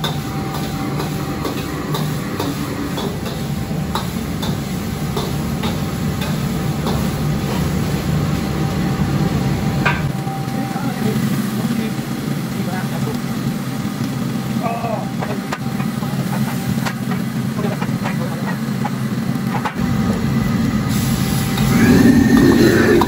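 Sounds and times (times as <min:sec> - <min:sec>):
food sizzling in a wok: 0:00.0 - 0:23.0
gas burner roaring: 0:00.0 - 0:23.0.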